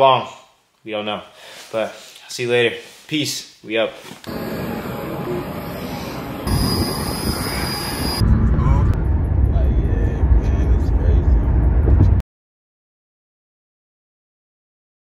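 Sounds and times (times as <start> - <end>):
jet engines whining: 4.3 - 12.0
steady noise: 4.3 - 12.2
car cabin rumble: 8.2 - 12.2.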